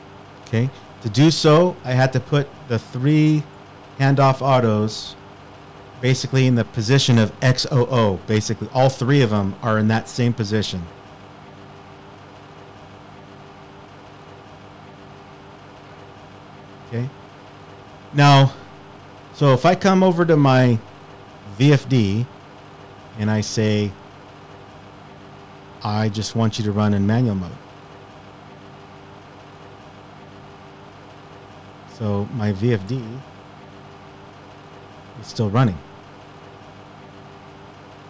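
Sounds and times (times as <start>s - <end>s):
faint steady tones: 0.0s - 38.0s
low background hum: 0.0s - 38.0s.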